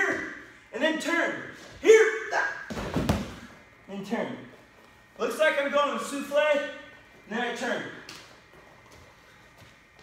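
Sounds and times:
soft footsteps on a mat: 8.2s - 10.0s.

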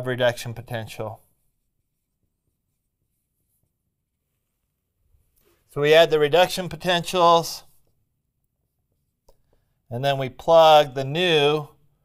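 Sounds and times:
man speaking: 0.0s - 1.3s, 5.7s - 7.8s, 9.9s - 11.8s.

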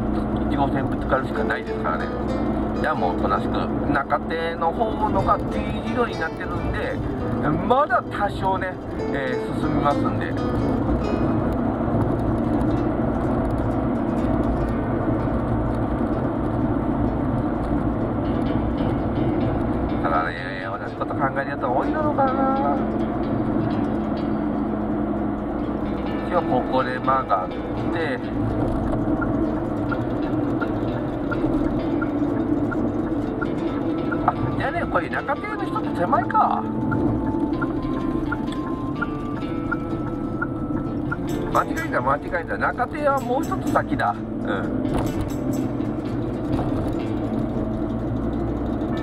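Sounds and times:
car engine and road noise: 0.0s - 49.0s
constant low hum: 0.0s - 49.0s.

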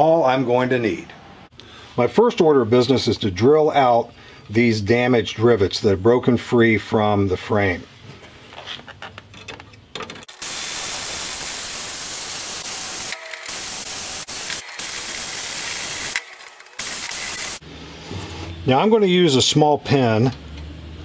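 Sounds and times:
power drill drilling rivet: 10.3s - 17.6s.

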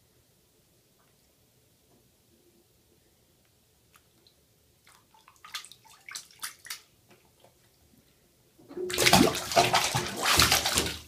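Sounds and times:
small splashes and drips: 3.9s - 7.8s, 8.7s - 11.0s
loud splashing: 8.8s - 11.0s.

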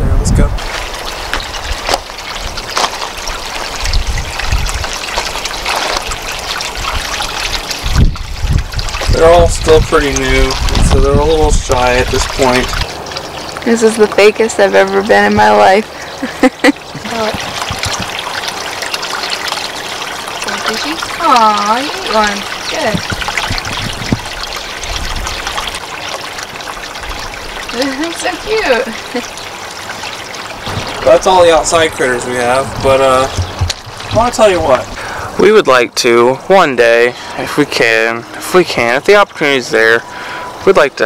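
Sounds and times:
small waterfall splashing into pond: 0.4s - 41.0s.

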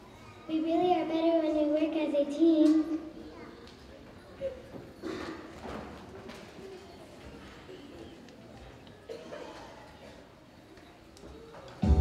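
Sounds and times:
faint scattered voices: 0.0s - 12.0s
child speaking into a microphone: 0.1s - 5.4s.

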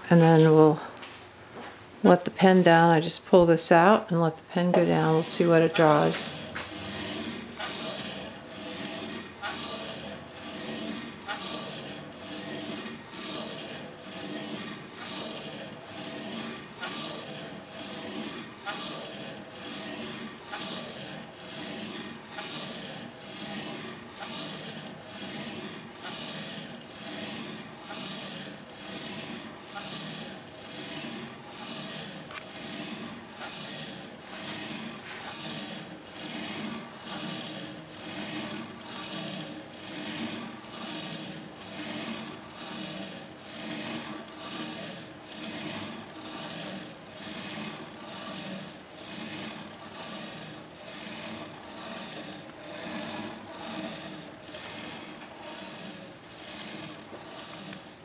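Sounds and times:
pen scratching across paper: 4.7s - 58.0s.

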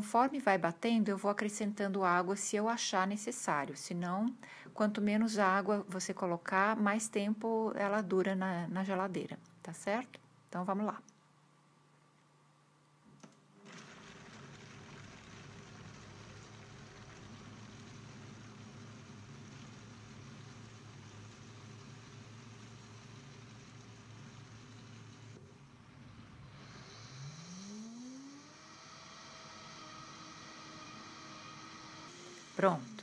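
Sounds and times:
blender motor whining: 13.6s - 33.0s.

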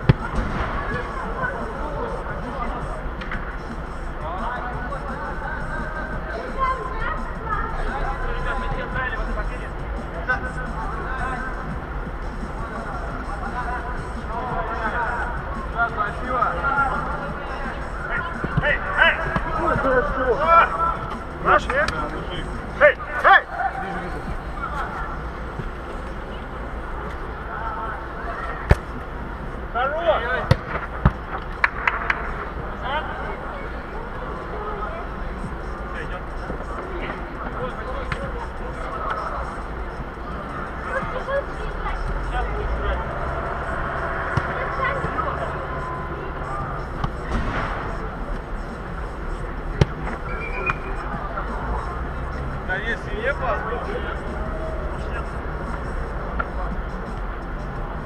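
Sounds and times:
steady low hum: 0.0s - 58.0s
players shouting in a hall: 42.5s - 46.8s.

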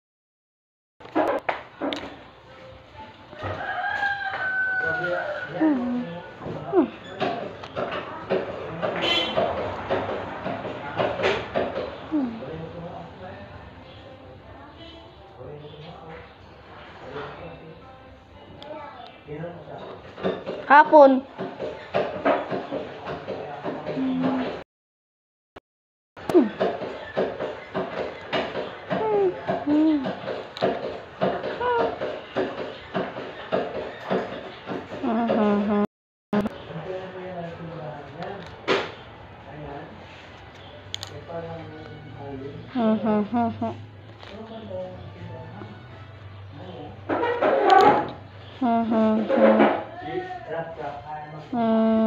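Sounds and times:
rooster crowing: 3.3s - 5.6s
person humming: 24.0s - 24.6s, 26.2s - 26.6s, 29.0s - 30.1s, 35.0s - 36.5s, 42.8s - 43.7s, 48.6s - 49.3s, 51.6s - 52.0s.

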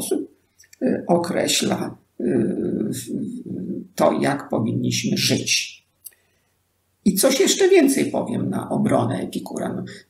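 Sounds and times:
man speaking in low voice: 0.0s - 5.8s, 7.0s - 10.0s.

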